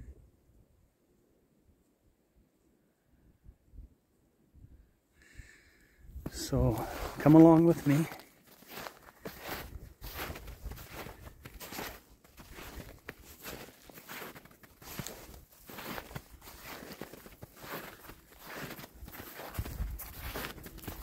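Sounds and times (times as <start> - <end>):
footsteps in snow: 6.2 - 21.0.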